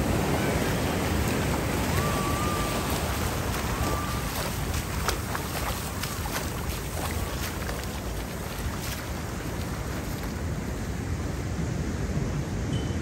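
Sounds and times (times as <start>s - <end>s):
waves breaking on beach: 0.0s - 12.8s
wind on microphone: 0.0s - 13.0s.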